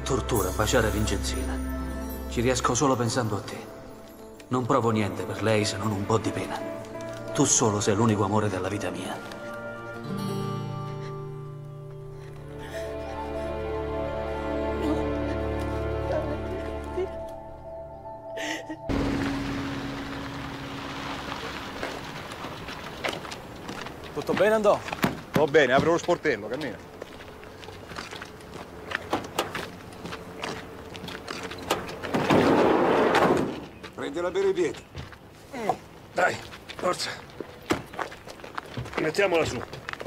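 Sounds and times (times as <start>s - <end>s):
footsteps scuffing on dirt road: 8.8s - 10.2s, 21.4s - 32.2s, 33.6s - 40.0s
outdoor noise hiss: 18.9s - 24.4s.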